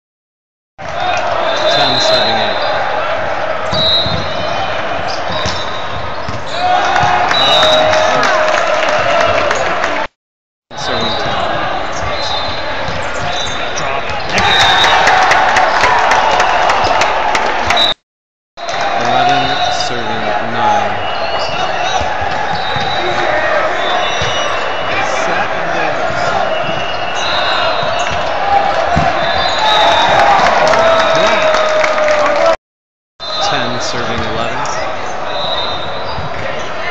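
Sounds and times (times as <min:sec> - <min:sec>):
crowd noise and voices: 0:00.8 - 0:10.1, 0:10.7 - 0:18.0, 0:18.6 - 0:32.6, 0:33.2 - 0:36.9
sneakers squeaking on court: 0:03.8 - 0:06.7.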